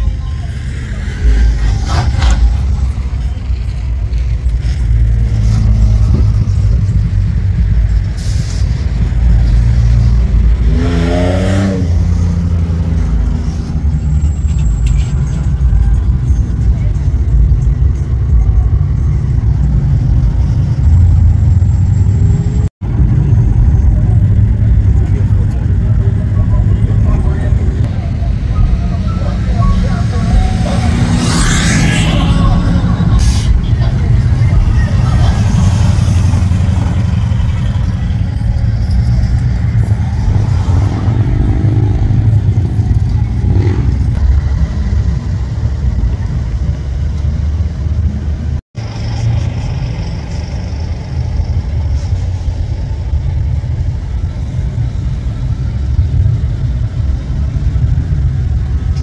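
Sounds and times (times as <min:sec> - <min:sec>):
vehicles driving past: 0:00.0 - 0:59.0.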